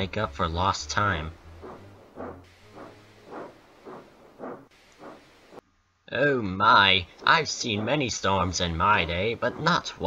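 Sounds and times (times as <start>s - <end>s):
steam locomotive chuffing: 0.3s - 5.6s.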